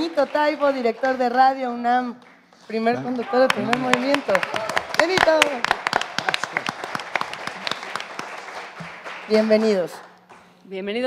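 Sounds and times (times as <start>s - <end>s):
audience applauding: 2.2s - 10.3s.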